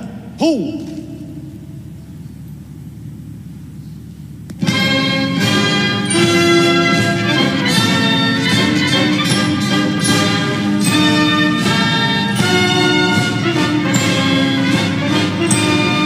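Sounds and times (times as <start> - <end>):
military brass band playing: 4.6 - 16.0.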